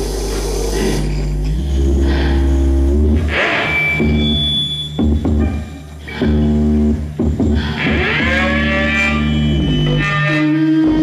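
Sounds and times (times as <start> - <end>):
deeper bass drone: 0.0 - 11.0
sustained low drones: 0.0 - 11.0.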